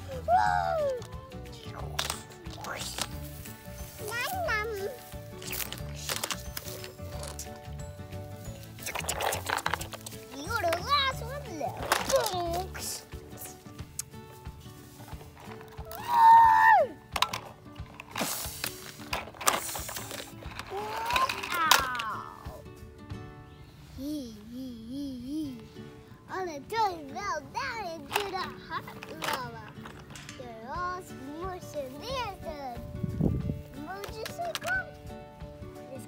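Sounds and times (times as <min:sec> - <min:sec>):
boy making play noises: 0:00.0 - 0:01.8, 0:03.9 - 0:05.6, 0:20.7 - 0:22.7, 0:24.0 - 0:25.7
background music: 0:00.0 - 0:36.0.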